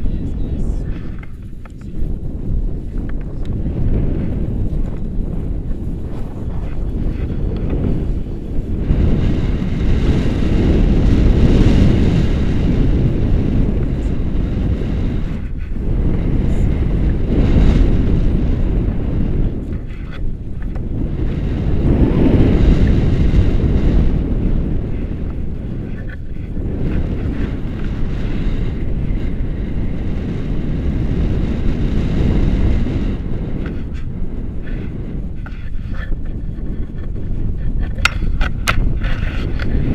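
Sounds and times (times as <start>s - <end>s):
wind noise on microphone: 0.0s - 39.9s.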